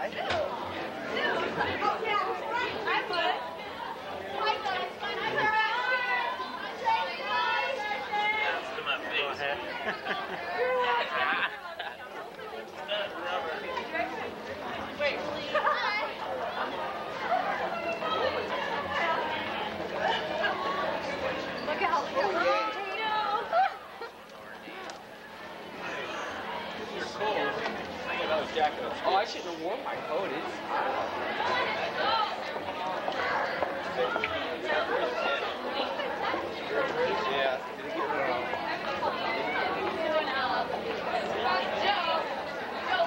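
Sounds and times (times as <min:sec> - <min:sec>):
chatter of many teenagers: 0:00.0 - 0:43.0.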